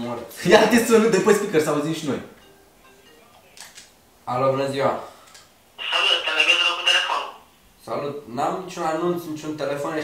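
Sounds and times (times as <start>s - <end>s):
voice through phone loudspeaker: 5.8s - 7.4s.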